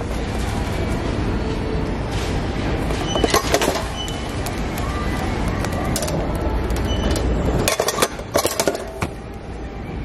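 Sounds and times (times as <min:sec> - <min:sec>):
shopping cart rolling: 0:00.0 - 0:09.1.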